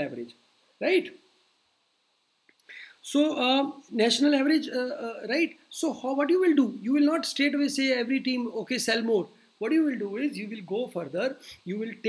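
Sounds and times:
man speaking: 0.0 - 1.2, 3.0 - 12.0
mouth click: 2.5 - 2.8
breath in: 2.6 - 3.0.

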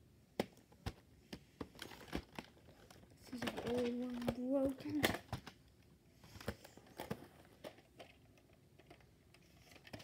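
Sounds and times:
person speaking: 3.2 - 5.3.

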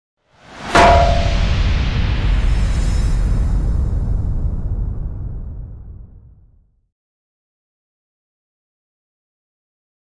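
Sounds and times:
ringing metallic hit: 0.6 - 1.6
low rumbling tail: 0.8 - 6.6.

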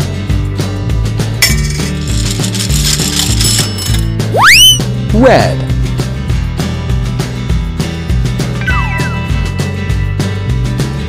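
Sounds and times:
coin clinking into slot: 1.4 - 4.2
ratcheting crank mechanism: 1.8 - 4.1
children's backing music: 6.7 - 11.0.

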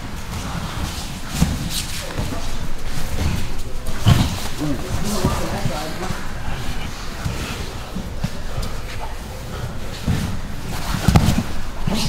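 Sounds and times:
bodies scuffling and thudding on mats: 0.0 - 12.0
voices in room: 0.0 - 12.0.

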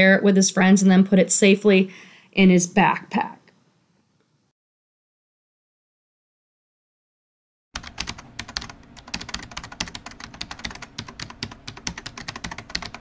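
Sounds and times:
rapid keyboard typing clicks: 7.8 - 13.0.

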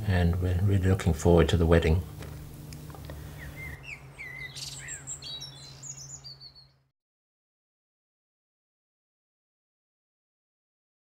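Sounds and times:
low steady hum: 0.0 - 6.9
small birds chirping: 2.2 - 6.9.

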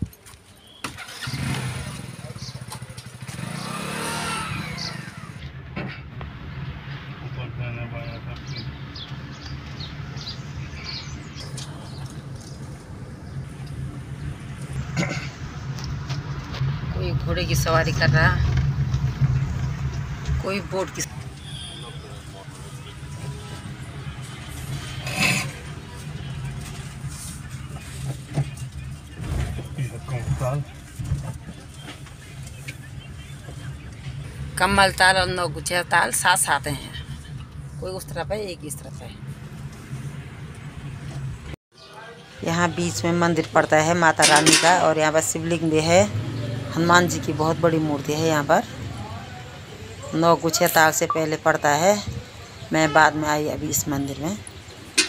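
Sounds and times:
car engine and road noise: 0.0 - 55.0
motorcycle engine running: 1.1 - 5.6.

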